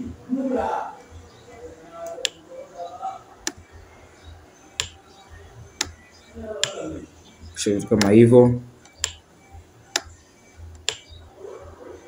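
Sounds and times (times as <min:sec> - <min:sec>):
mouse clicks: 0:02.0 - 0:02.4, 0:04.8 - 0:05.0, 0:05.7 - 0:06.9, 0:07.9 - 0:08.2, 0:08.8 - 0:09.2, 0:09.9 - 0:11.2.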